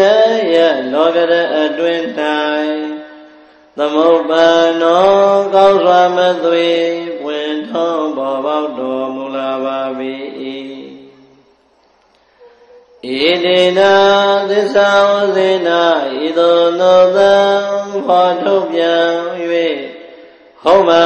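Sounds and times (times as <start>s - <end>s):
person chanting melodic recitation: 0.0s - 3.1s, 3.8s - 11.3s, 12.4s - 21.0s.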